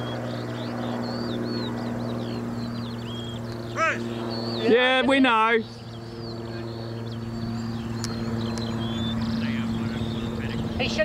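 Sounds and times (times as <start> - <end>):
small engine humming: 0.0 - 11.0.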